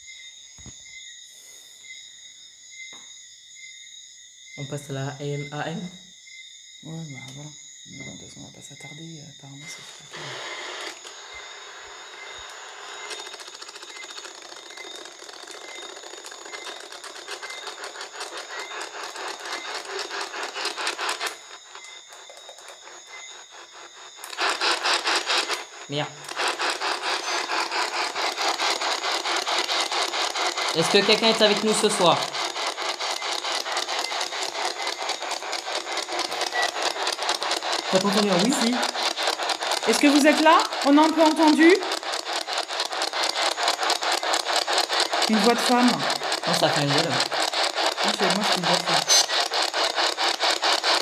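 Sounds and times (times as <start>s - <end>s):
pulsing radio static: 9.6s - 51.0s.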